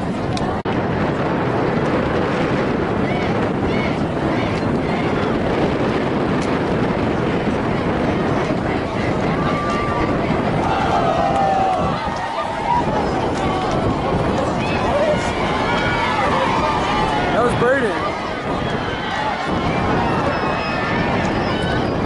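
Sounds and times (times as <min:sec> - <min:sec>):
crowd murmur: 0:00.0 - 0:22.0
wind on microphone: 0:00.0 - 0:22.0.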